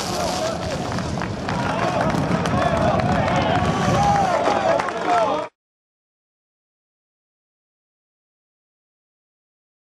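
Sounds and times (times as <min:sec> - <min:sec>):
people talking: 0:00.0 - 0:01.0, 0:01.6 - 0:05.6.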